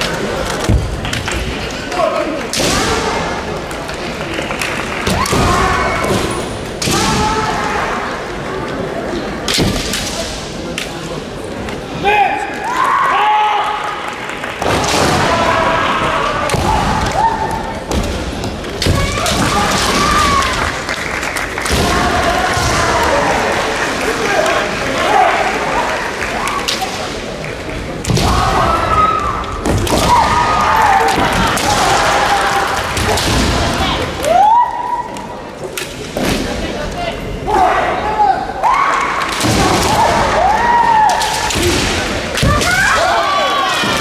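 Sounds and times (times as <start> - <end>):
reverberant hall murmur: 0.0 - 44.0.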